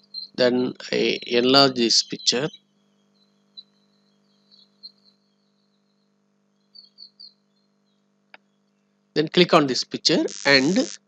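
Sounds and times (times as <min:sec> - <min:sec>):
faint bird chirps: 0:00.0 - 0:08.9, 0:09.8 - 0:11.0
low electrical hum: 0:00.0 - 0:11.0.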